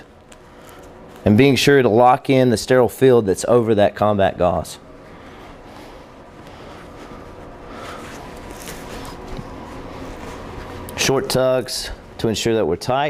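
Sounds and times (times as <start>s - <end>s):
bandage rustling: 0.0s - 1.6s, 5.0s - 11.3s
low room noise: 0.0s - 13.0s.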